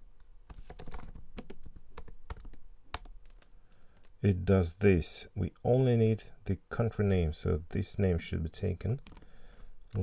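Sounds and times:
computer keyboard typing: 0.5 - 4.1, 9.0 - 10.0.

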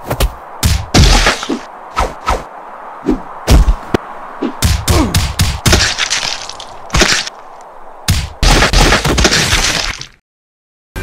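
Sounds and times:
cartoon cracks and whacks: 8.1 - 10.2.

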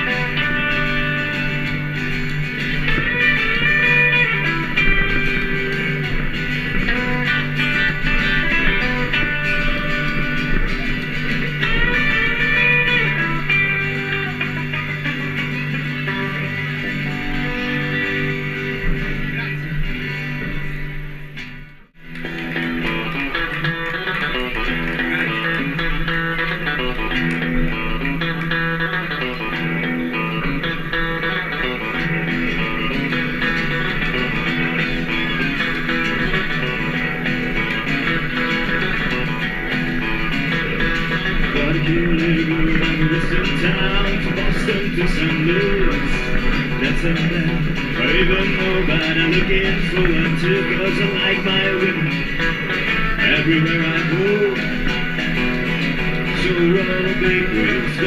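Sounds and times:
electric lead guitar: 0.0 - 58.0
strummed acoustic guitar: 0.0 - 58.0.

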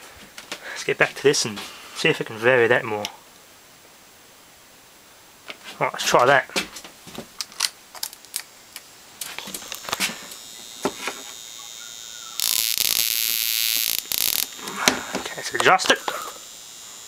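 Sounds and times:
faint steady whine: 0.0 - 17.0
loud high-pitched electrical buzz: 8.8 - 17.0
scattered clicks: 12.4 - 16.3.

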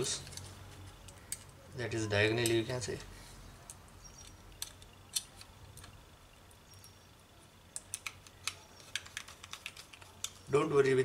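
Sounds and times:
screwdriver clicking on metal caddy: 3.7 - 6.0, 7.7 - 10.5.

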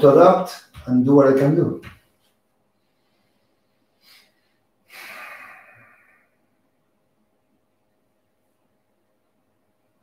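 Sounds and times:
person sighing: 4.9 - 6.3.

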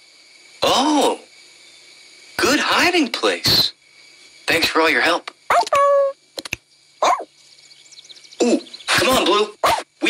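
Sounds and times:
cartoon puppy bark: 5.5 - 6.2, 7.0 - 7.3, 9.6 - 9.9.

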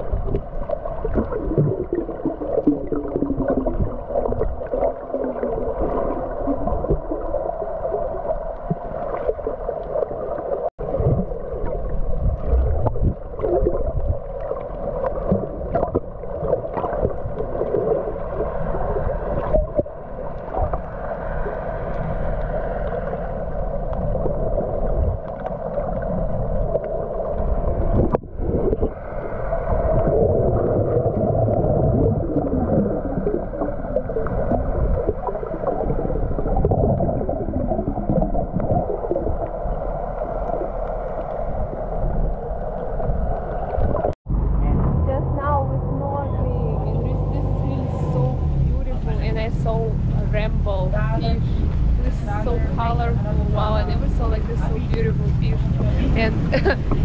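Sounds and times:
water gurgling underwater: 0.0 - 57.0
low steady drone: 44.3 - 57.0.

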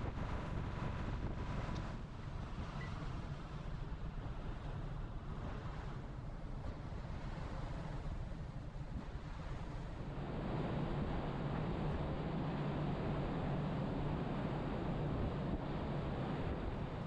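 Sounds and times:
sea wash: 0.0 - 17.0
ship engine low rumble: 0.0 - 17.0
wind buffeting microphone: 0.0 - 17.0.

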